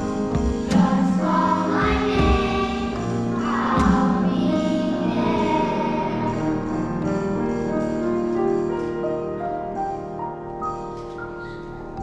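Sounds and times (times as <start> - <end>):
electronic drum kit: 0.0 - 5.9
choir singing with band: 0.0 - 7.4
accented drum and cymbal hits: 0.0 - 9.0.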